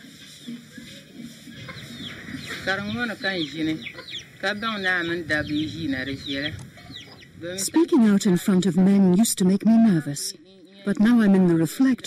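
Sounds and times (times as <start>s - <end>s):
hen clucking: 0.0s - 9.0s
people's voices: 0.0s - 12.0s.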